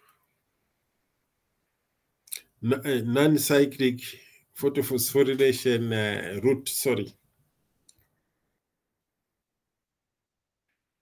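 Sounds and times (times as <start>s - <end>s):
person speaking: 2.3s - 7.2s.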